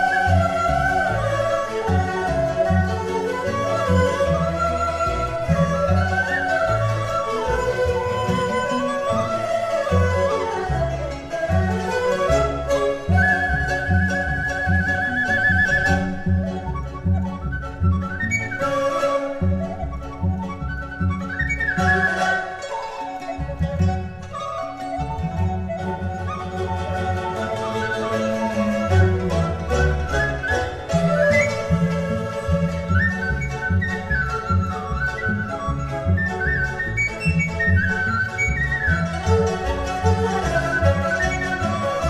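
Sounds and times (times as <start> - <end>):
bamboo flute melody: 0.0 - 42.0
instrumental accompaniment with bass line: 0.0 - 42.0.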